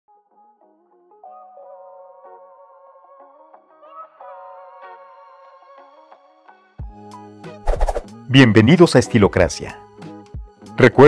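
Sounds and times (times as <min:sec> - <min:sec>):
quiet background music: 0:00.1 - 0:11.0.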